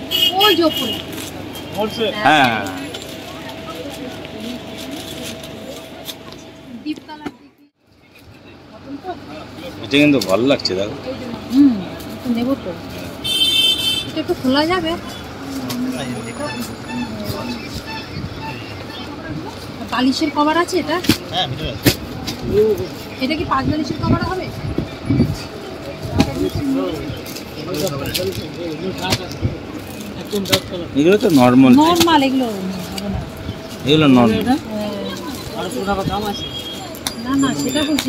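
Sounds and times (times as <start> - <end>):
indistinct voices: 14.1 - 38.0.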